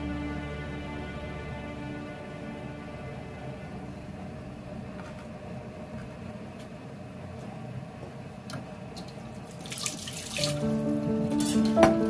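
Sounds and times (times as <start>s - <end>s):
water running from tap: 9.5s - 10.7s.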